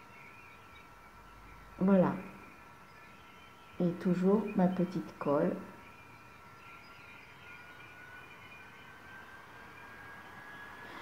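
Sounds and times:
faint high whine: 0.0 - 11.0.

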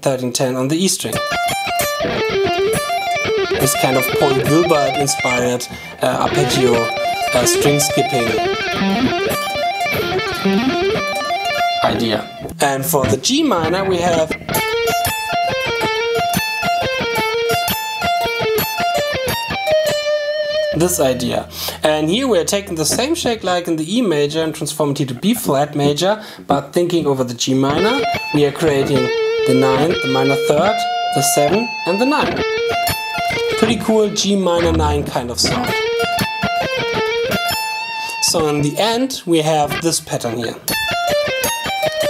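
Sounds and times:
electric guitar arpeggio: 1.2 - 24.3, 27.7 - 38.8, 40.7 - 42.0.

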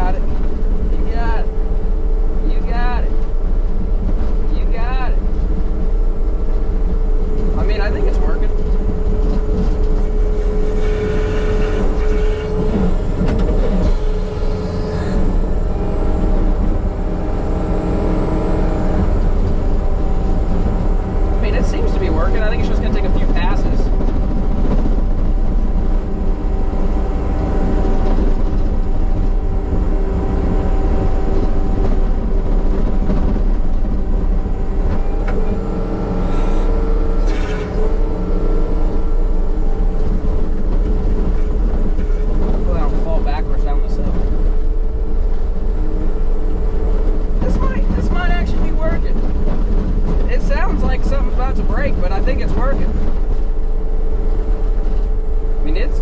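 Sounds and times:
diesel engine running under load: 0.0 - 56.0
steady hydraulic whine: 0.0 - 56.0.

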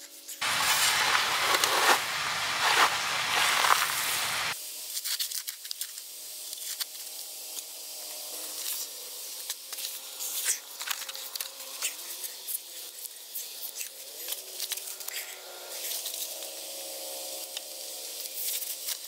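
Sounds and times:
dirt ticking: 0.4 - 4.6
hands scraping in soil: 0.4 - 4.6.

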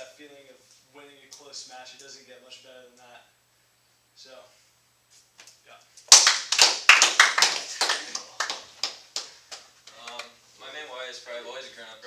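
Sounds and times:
small group applauding: 6.1 - 10.4.

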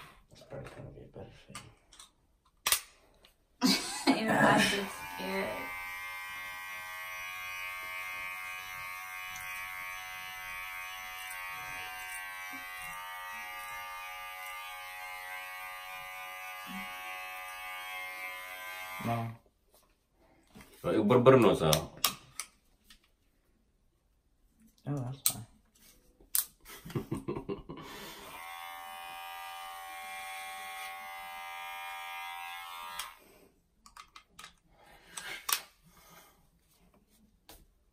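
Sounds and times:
electric hair clippers buzzing: 4.6 - 19.1, 28.0 - 33.2.

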